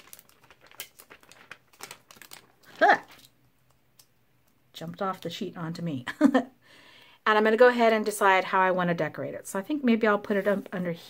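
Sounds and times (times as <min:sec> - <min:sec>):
plastic sheet crinkling: 0:00.0 - 0:03.4.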